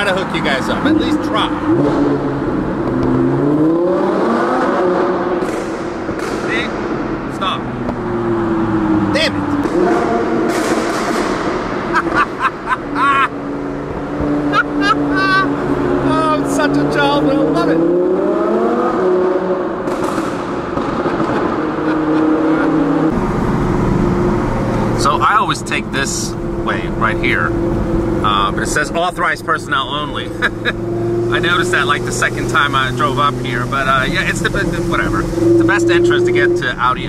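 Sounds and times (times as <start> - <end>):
car engine revving hard: 0.1 - 37.0
sharp exhaust cracks: 9.4 - 13.0, 19.8 - 22.2.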